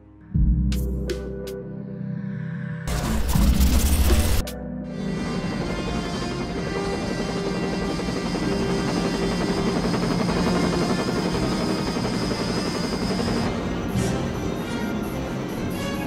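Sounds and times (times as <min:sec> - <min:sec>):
background music: 0:00.0 - 0:16.0
helicopter rotor and engine: 0:04.9 - 0:16.0.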